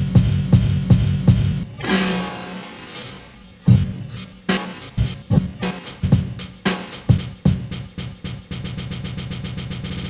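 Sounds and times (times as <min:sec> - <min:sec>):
electronic dance music loop: 0:00.0 - 0:10.0
pounding kick drum roll: 0:03.7 - 0:04.0.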